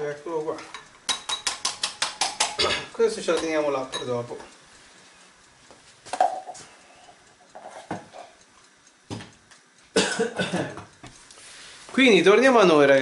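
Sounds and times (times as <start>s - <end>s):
person coughing: 10.0s - 10.8s.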